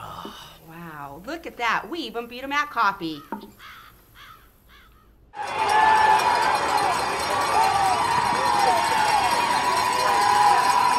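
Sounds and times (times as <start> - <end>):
crowd cheering and yelling: 5.4 - 10.9.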